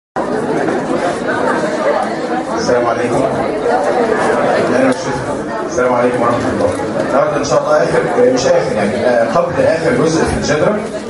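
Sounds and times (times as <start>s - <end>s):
indistinct chatter of voices: 0.2s - 11.0s.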